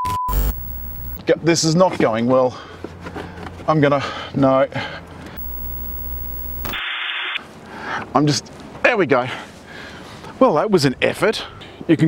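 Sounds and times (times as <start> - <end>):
electrical buzz: 0.3 - 1.2, 5.4 - 6.8
low hum: 0.3 - 1.2, 5.4 - 6.8
static hiss: 0.3 - 1.2, 5.4 - 7.4.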